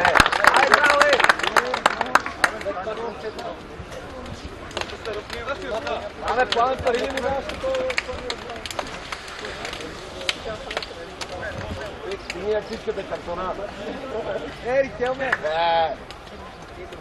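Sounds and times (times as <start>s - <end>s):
men talking and calling out: 0.0s - 17.0s.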